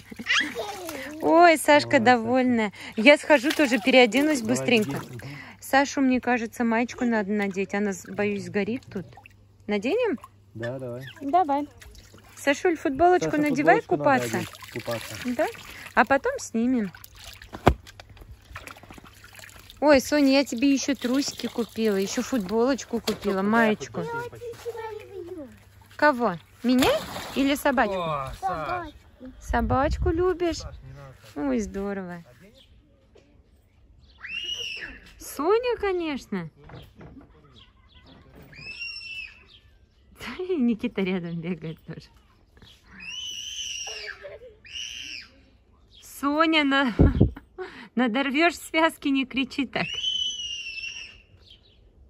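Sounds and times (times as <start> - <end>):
water splashing and trickling: 0.0 - 32.4
woman's voice: 1.0 - 9.1, 9.7 - 10.2, 12.4 - 14.5, 15.2 - 17.0, 19.8 - 24.2, 25.9 - 27.8, 29.3 - 30.6, 31.4 - 32.3, 35.2 - 36.5, 40.2 - 42.1, 46.0 - 50.0
girl screaming: 43.0 - 45.4.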